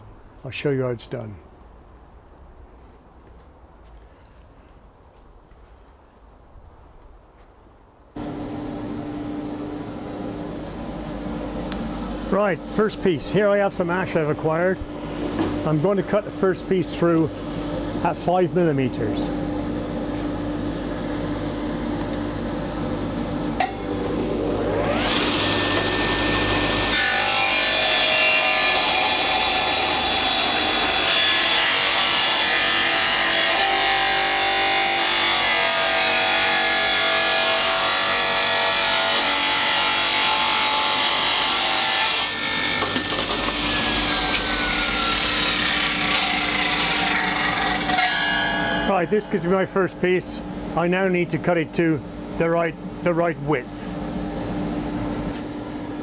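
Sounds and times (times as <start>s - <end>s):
table saw cutting wood: 24.2s - 50.4s
background hum: 31.6s - 56.0s.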